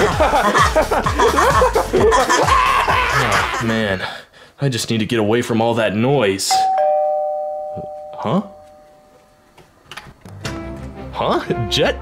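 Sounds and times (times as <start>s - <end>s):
background music: 0.0s - 3.7s, 10.2s - 12.0s.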